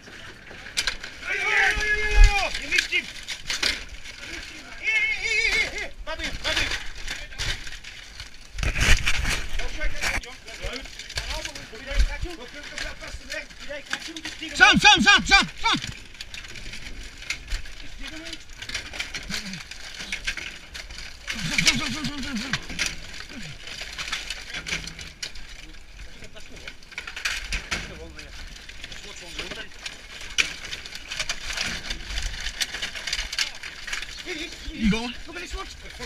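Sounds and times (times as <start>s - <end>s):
crushed cans rattling and crackling: 0.0s - 36.0s
debris being pulled aside: 0.1s - 36.0s
short calls: 14.6s - 15.9s.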